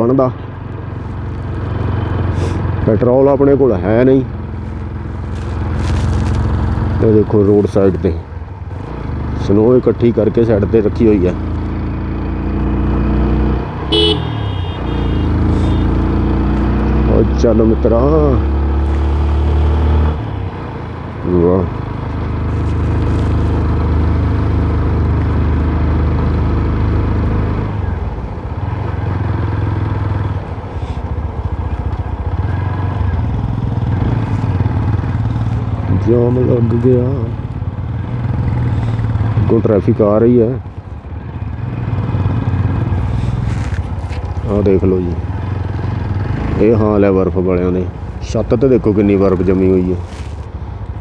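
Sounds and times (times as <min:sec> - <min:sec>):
motorcycle engine running: 0:08.7 - 0:19.2
man talking: 0:46.6 - 0:50.0.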